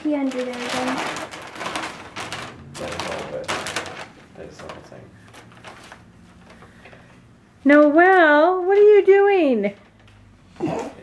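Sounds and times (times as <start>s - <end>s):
wrapping paper rustling: 0.0s - 10.4s.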